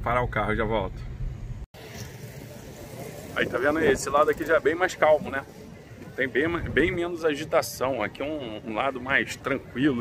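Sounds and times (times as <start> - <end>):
steady outdoor hiss: 0.0 - 10.0.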